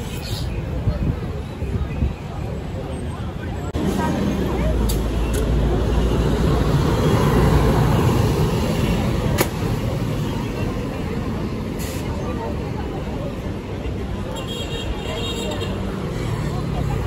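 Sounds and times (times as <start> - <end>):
people chattering: 0.0 - 17.0
vehicle engine rumble: 0.0 - 17.0.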